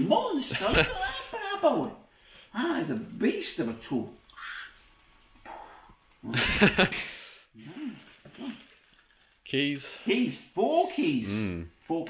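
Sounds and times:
man laughing: 0:06.3 - 0:07.1.

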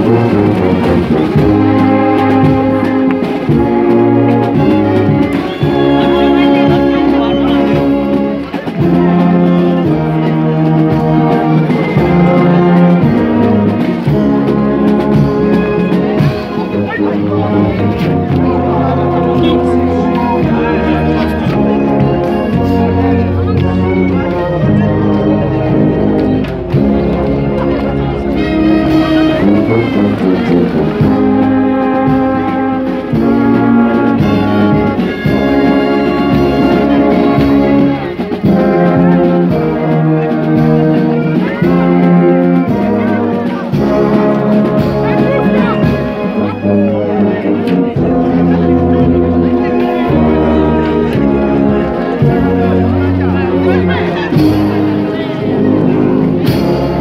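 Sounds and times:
brass band playing: 0:00.0 - 0:57.0
drum beat: 0:00.1 - 0:16.5.

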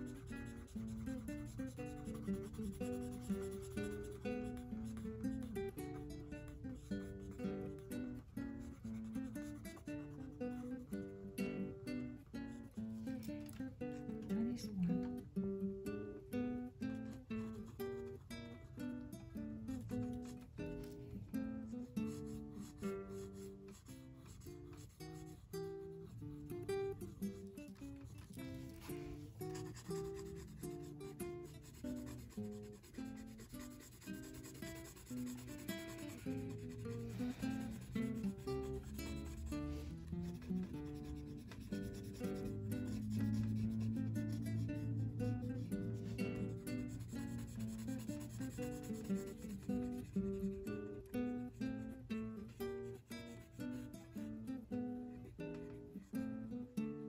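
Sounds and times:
pencil scratching on paper: 0:00.0 - 0:11.1, 0:21.8 - 0:50.6, 0:53.0 - 0:54.0.

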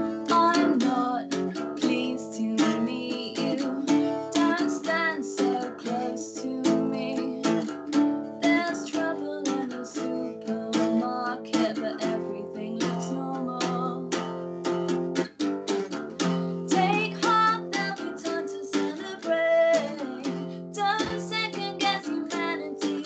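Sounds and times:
woman singing slow song: 0:00.0 - 0:14.3, 0:16.2 - 0:23.0
strummed guitar: 0:00.0 - 0:23.0.

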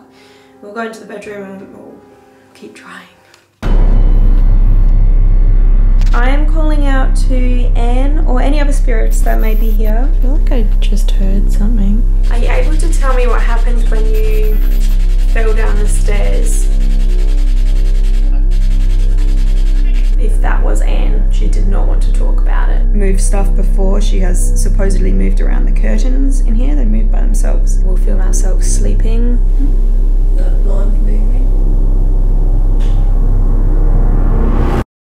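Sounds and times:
deep hum with overtones: 0:03.6 - 0:34.8.

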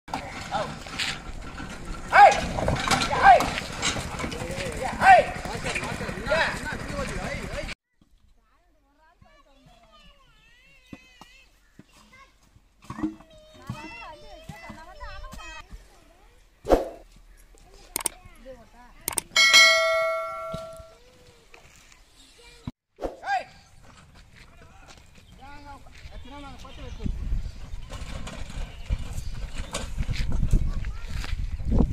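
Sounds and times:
hooves clopping on dirt road: 0:00.1 - 0:08.3, 0:09.1 - 0:16.4, 0:23.6 - 0:31.9
metal pan ringing: 0:19.3 - 0:21.0.

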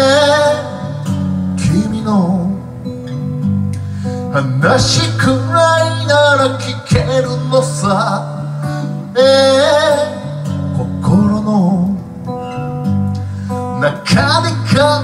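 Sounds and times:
man singing: 0:00.0 - 0:02.7, 0:04.1 - 0:12.4, 0:13.5 - 0:15.0
acoustic guitar: 0:00.0 - 0:15.0.

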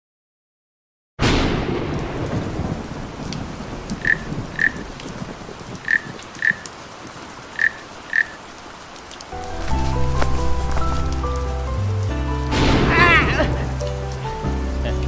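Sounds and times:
thunder crack rumbling: 0:01.2 - 0:07.7, 0:09.4 - 0:14.8
steady rain: 0:01.2 - 0:15.0.

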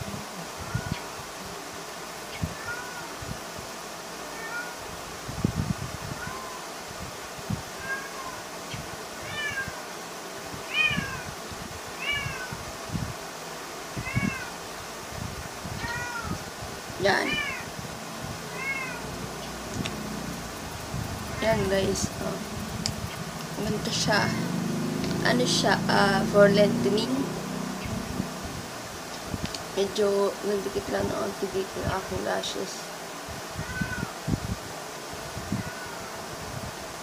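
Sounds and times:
cat meowing: 0:02.5 - 0:03.1, 0:04.3 - 0:04.8, 0:06.2 - 0:06.6, 0:07.8 - 0:08.4, 0:09.2 - 0:09.8, 0:10.7 - 0:11.3, 0:12.0 - 0:12.6, 0:14.0 - 0:14.6, 0:15.8 - 0:16.4, 0:17.2 - 0:17.7, 0:18.5 - 0:19.1, 0:33.6 - 0:34.2, 0:35.6 - 0:36.1.

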